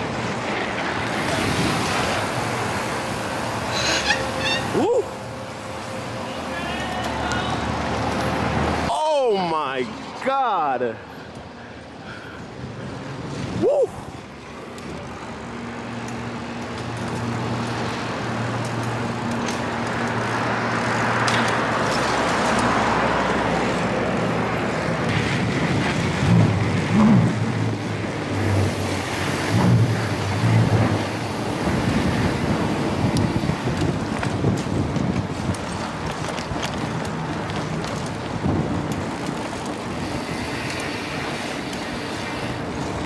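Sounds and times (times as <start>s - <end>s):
road traffic engine hum: 0.0s - 43.0s.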